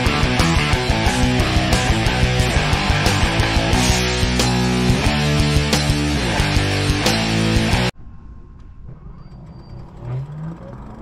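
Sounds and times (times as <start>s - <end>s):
low pitched hum: 7.9s - 11.0s.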